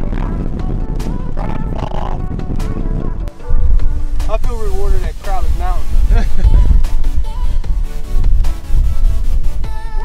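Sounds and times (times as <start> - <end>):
person singing: 0.0 - 4.2, 6.1 - 8.3, 9.6 - 10.0
music with heavy bass beat: 0.0 - 10.0
wind rumbling on microphone: 0.0 - 10.0.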